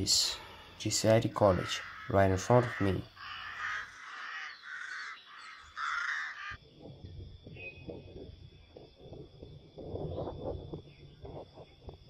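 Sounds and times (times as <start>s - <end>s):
harsh bird calls: 0.0s - 6.8s.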